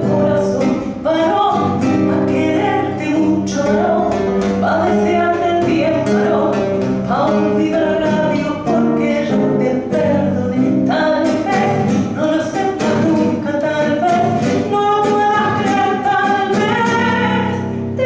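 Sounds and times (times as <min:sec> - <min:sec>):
classical guitar: 0:00.0 - 0:18.0
woman singing a tango: 0:00.0 - 0:18.0.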